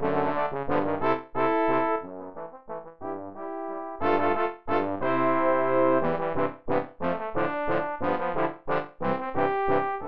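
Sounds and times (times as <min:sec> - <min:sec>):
trombone quartet playing: 0:00.0 - 0:10.0.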